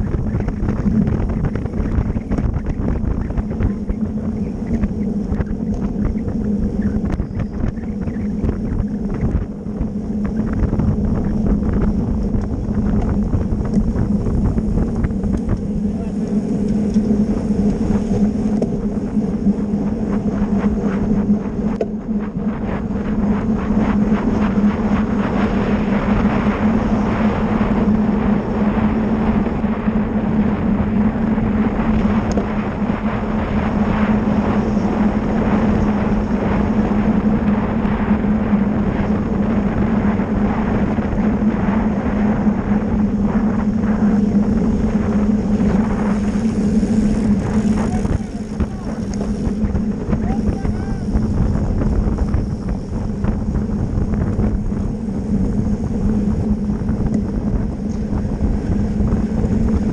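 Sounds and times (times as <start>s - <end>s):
steady low hum: 0.0s - 59.9s
wind rushing over microphone: 0.0s - 59.9s.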